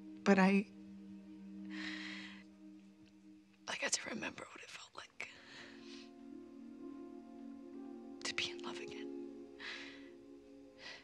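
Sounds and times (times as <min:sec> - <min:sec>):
soft sustained background music: 0:00.0 - 0:11.0.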